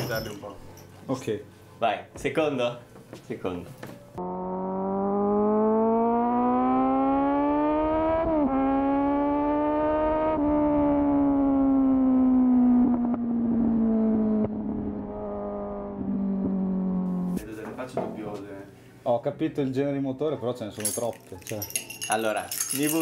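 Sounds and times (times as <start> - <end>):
motorcycle engine revving: 4.2 - 17.4.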